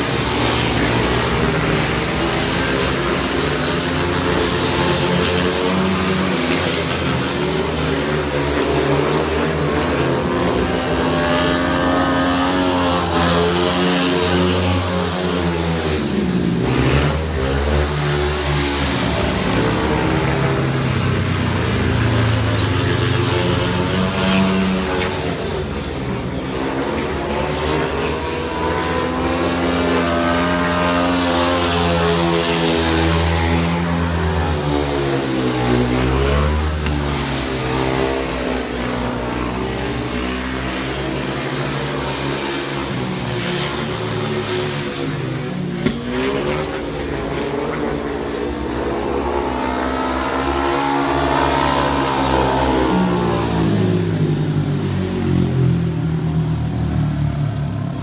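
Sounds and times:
motorcycles racing: 0:00.0 - 0:58.0.

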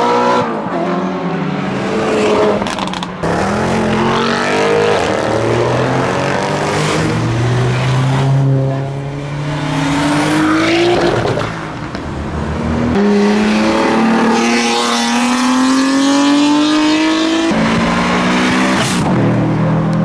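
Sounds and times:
car engines accelerating hard: 0:00.0 - 0:20.0.

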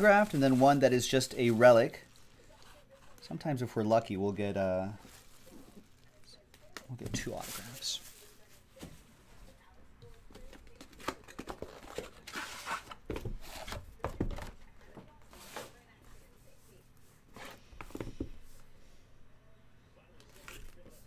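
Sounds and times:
cardboard rubbing and tapping: 0:10.3 - 0:15.8.

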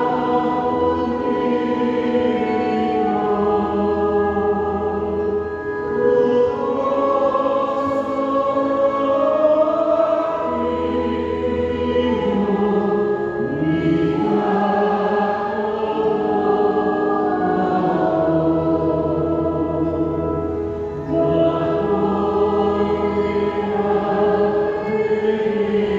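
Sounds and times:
organ playing a hymn: 0:00.0 - 0:25.9.

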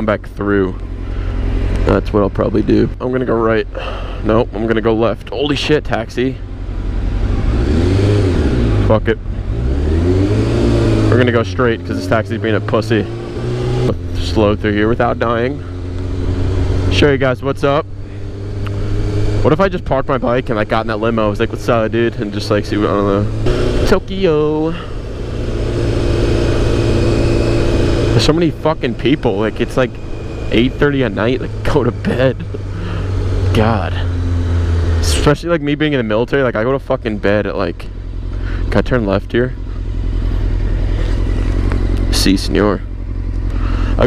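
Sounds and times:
motorcycle engine revving: 0:00.0 - 0:44.0.

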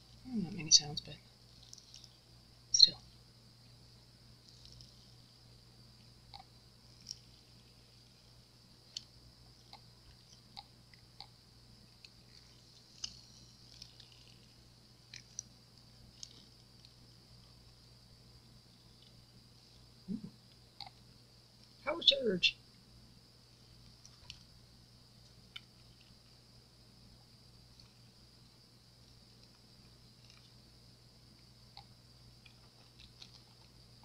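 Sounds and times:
steady low hum: 0:00.0 - 0:34.0
silicone mold clicks and crackles: 0:08.8 - 0:17.6, 0:31.3 - 0:34.0.

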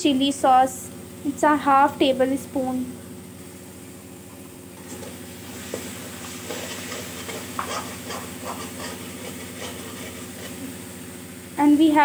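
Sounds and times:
steady low hum: 0:00.0 - 0:12.0
light sizzle: 0:03.3 - 0:12.0
spoon scraping metal pan: 0:05.7 - 0:10.8.

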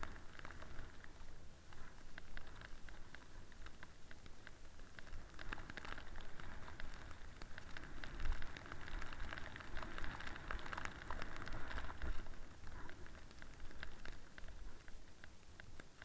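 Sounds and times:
snowboard sliding over snow: 0:00.0 - 0:15.6.

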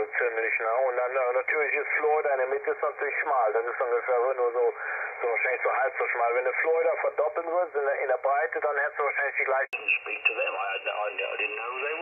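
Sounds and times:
thin radio voice through speaker: 0:09.6 - 0:12.0.

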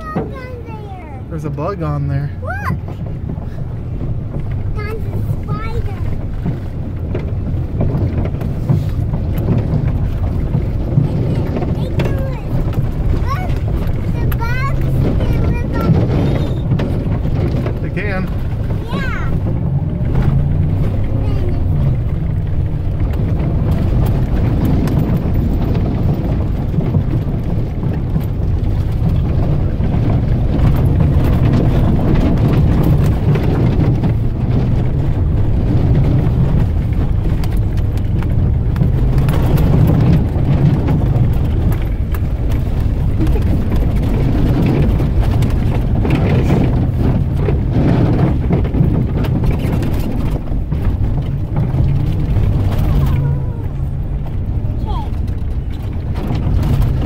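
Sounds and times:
truck engine and tyres rumbling: 0:00.0 - 0:57.0.

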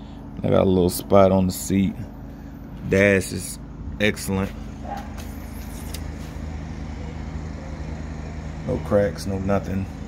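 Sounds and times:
motor humming: 0:00.0 - 0:10.0.

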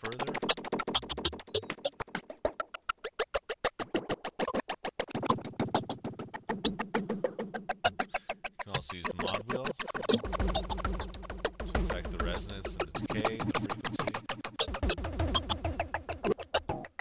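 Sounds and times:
glitched bongo loop stuttering: 0:00.0 - 0:17.0.

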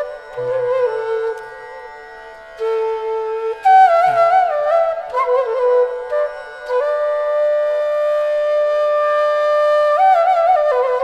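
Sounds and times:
flute playing slow melody: 0:00.0 - 0:11.0.

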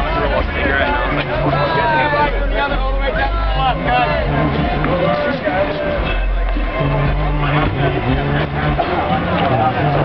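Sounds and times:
crowd voices chattering: 0:00.0 - 0:10.0
held bass notes: 0:00.0 - 0:10.0
music over sound system: 0:00.0 - 0:10.0.

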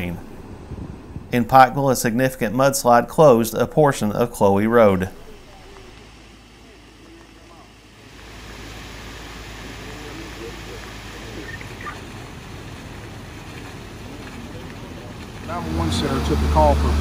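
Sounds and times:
low background rumble: 0:00.0 - 0:17.0.

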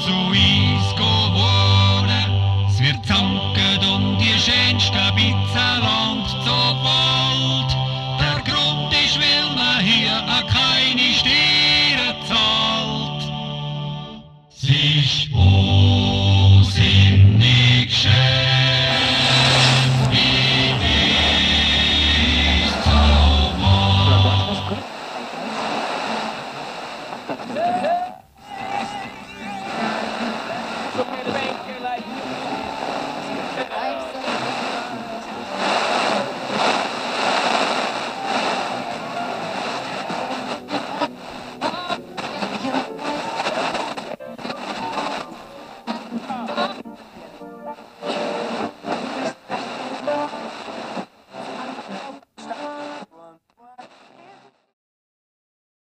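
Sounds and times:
music: 0:00.0 - 0:24.8, 0:35.4 - 0:50.6
people talking: 0:18.9 - 0:54.4.

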